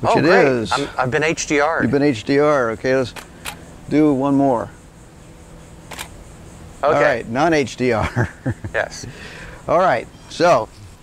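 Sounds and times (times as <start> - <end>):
camera shutter click: 5.9 - 6.2.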